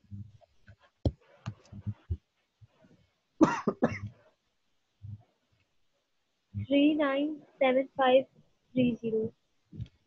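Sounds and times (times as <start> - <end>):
man coughing: 3.4 - 4.1.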